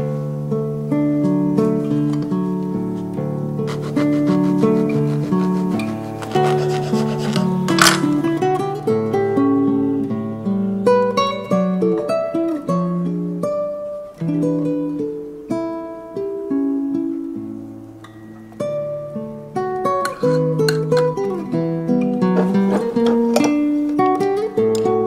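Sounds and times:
acoustic guitar music: 0:00.0 - 0:25.0
bread knife sawing crust: 0:03.7 - 0:07.8.

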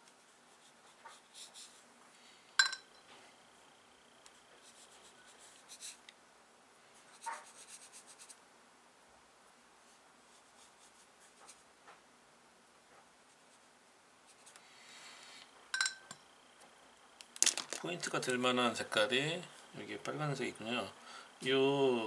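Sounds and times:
felt-tip pen strokes on paper: 0:00.0 - 0:01.8, 0:04.3 - 0:06.0, 0:07.0 - 0:08.4, 0:09.8 - 0:11.7.

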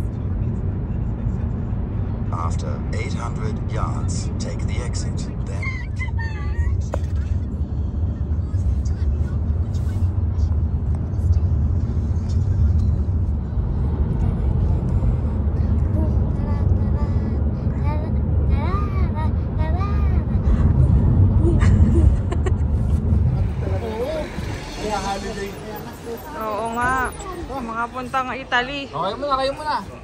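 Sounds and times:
car cabin road rumble: 0:00.0 - 0:30.0.

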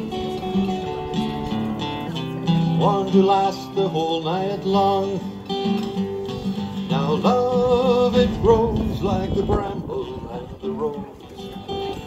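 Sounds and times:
acoustic guitar strumming: 0:00.0 - 0:12.0
person singing folk song: 0:00.0 - 0:12.0.

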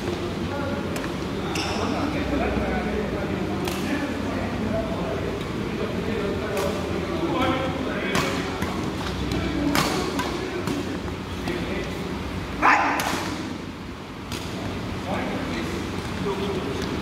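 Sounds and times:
rackets striking shuttlecock: 0:06.5 - 0:06.8, 0:08.1 - 0:11.6, 0:12.8 - 0:13.5.

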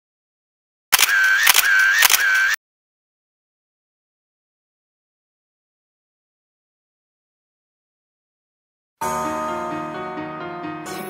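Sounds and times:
camera shutter clicks: 0:00.9 - 0:02.6
short whirring tone: 0:00.9 - 0:02.6.

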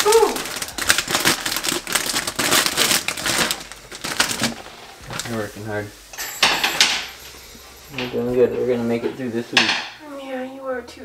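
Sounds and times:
plastic and paper wrapping crinkling: 0:00.0 - 0:09.4.

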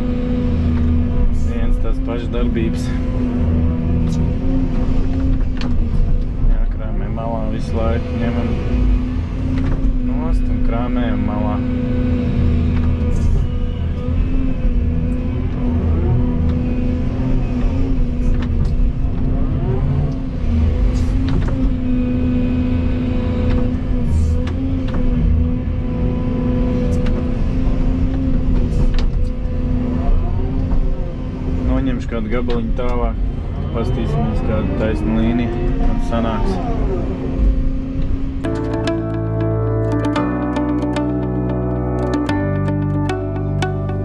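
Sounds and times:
excavator diesel engine running: 0:38.4 - 0:44.0.

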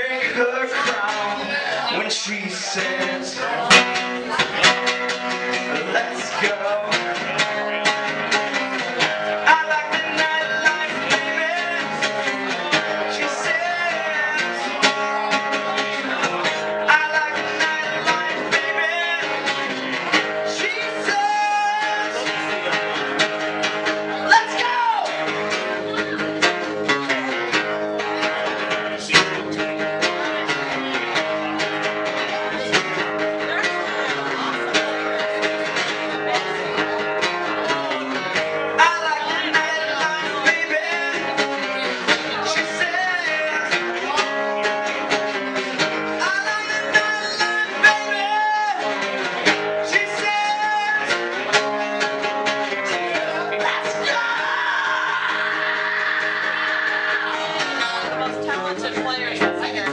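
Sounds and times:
acoustic guitar strumming: 0:00.0 - 0:59.9.

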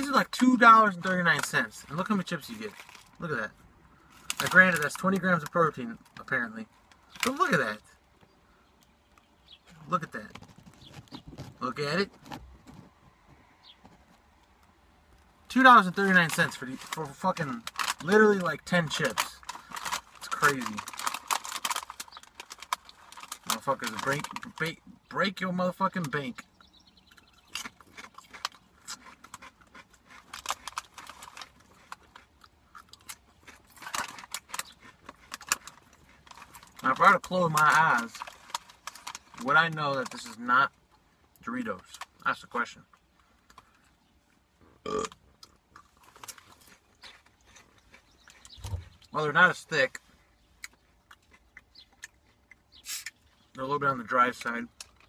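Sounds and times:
foil snack bag crinkling: 0:00.0 - 0:03.3, 0:04.0 - 0:05.6, 0:15.8 - 0:24.7, 0:27.4 - 0:40.4, 0:45.7 - 0:48.9
chewing crunchy chip: 0:00.0 - 0:07.9, 0:14.0 - 0:55.0.

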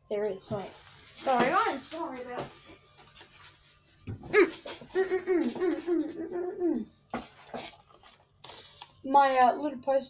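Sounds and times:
rustles and scrapes of handling: 0:00.6 - 0:06.3, 0:07.1 - 0:09.0.

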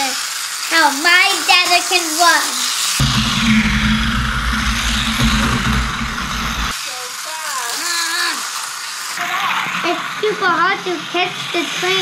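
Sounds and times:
toy train rattling whir: 0:00.0 - 0:03.0, 0:06.7 - 0:12.0
low rumble: 0:03.0 - 0:06.8.

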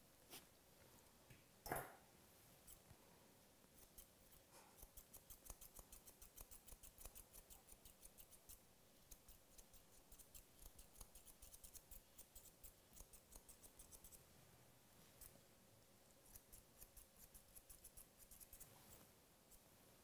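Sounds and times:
shears snipping hair: 0:03.8 - 0:14.2.

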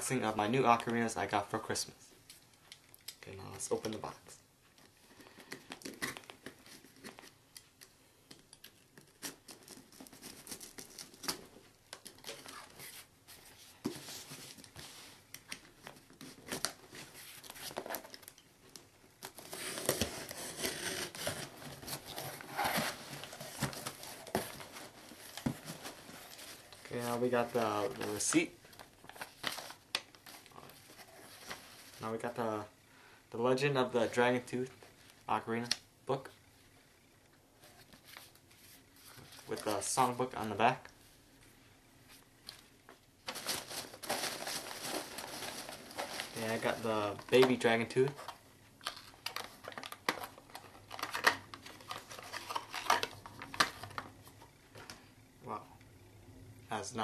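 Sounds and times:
paper and packing peanuts rustling: 0:09.1 - 0:18.3, 0:19.2 - 0:32.6, 0:42.1 - 0:54.1
cardboard box rustling: 0:19.4 - 0:28.0, 0:43.3 - 0:46.8.

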